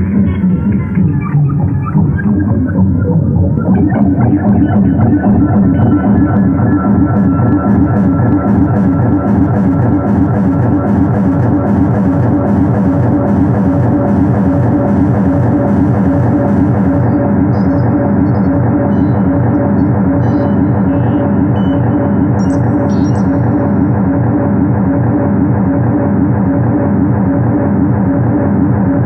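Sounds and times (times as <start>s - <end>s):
synthesizer drone with pulsing bass: 0.0s - 29.0s.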